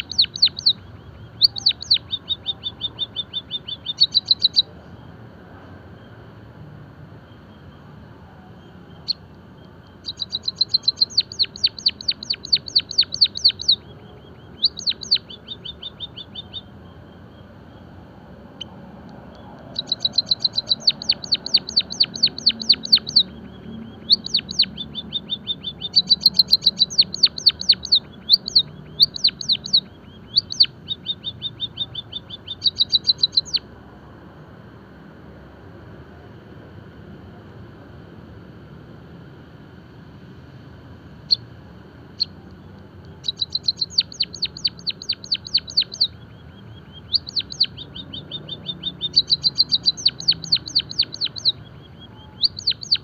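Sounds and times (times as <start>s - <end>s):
bird chirping rapidly: 0.0s - 4.7s, 8.6s - 33.7s, 41.2s - 41.5s, 42.1s - 53.0s.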